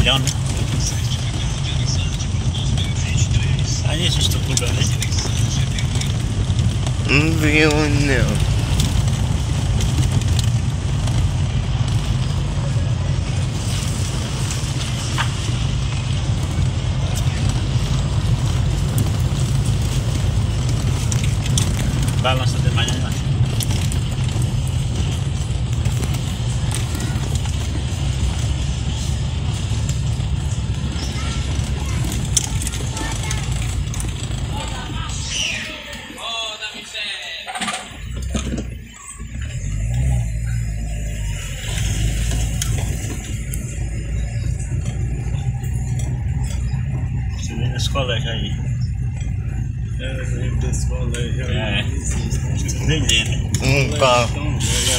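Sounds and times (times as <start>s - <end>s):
car cabin engine and road noise: 0.0s - 54.9s.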